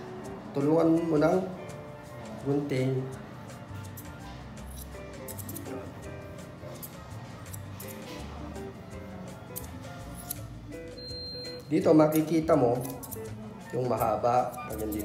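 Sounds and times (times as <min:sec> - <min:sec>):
background music: 0:00.0 - 0:15.0
scissors snipping hair: 0:03.8 - 0:05.9, 0:06.7 - 0:08.2, 0:09.5 - 0:10.5, 0:12.1 - 0:15.0.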